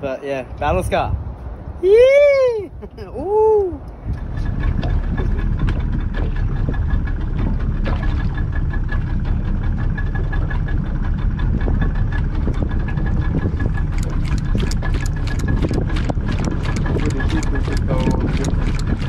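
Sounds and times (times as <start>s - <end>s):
boat engine idling: 3.1s - 19.0s.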